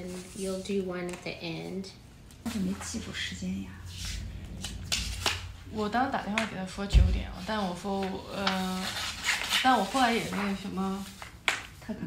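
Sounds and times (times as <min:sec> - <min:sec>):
woman speaking: 0:00.0 - 0:04.3, 0:05.5 - 0:11.2, 0:11.8 - 0:12.0
papers shuffling: 0:07.4 - 0:11.8.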